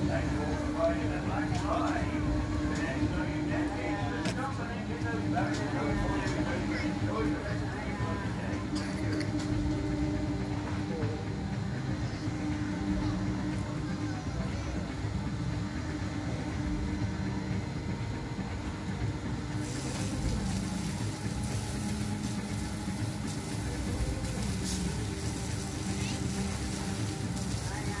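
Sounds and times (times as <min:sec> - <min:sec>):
low mechanical hum of ride machinery: 0:00.0 - 0:28.0
hiss: 0:19.6 - 0:28.0.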